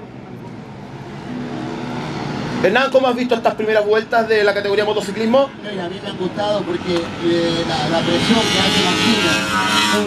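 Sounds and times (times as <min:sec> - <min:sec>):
racing motorcycle engine: 0:01.1 - 0:10.0.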